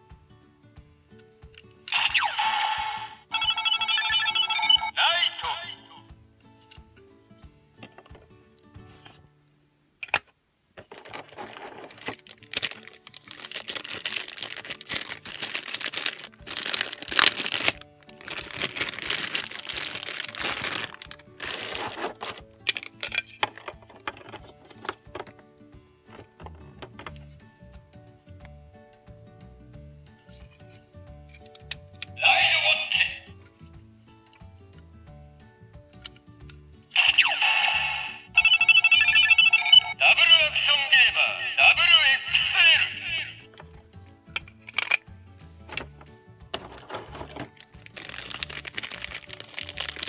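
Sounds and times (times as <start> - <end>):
toy electronic sound effect: 1.9 - 6.0, 37.0 - 43.4
plastic packaging crinkling: 10.8 - 22.5, 46.6 - 50.0
electronic beeping tones: 37.3 - 40.0.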